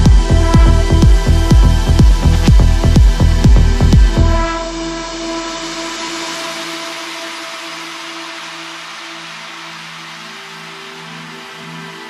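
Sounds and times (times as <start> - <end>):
kick drum: 0.0 - 4.6
electronic dance track: 0.0 - 12.0
held synth chord: 0.0 - 12.0.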